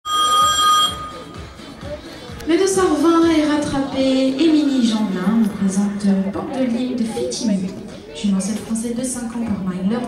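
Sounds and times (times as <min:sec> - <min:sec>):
electronic start bell ring: 0:00.1 - 0:01.4.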